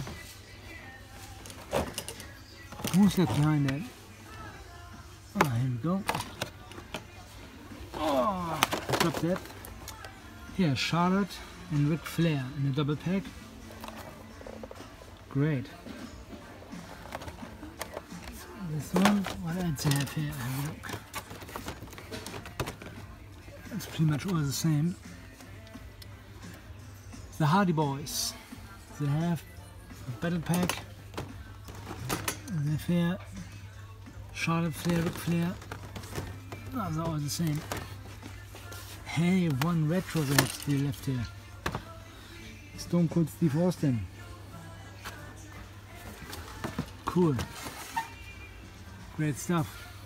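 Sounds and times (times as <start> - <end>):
faint background music: 0.0 - 50.0
plastic blister packs clicking: 39.5 - 41.0.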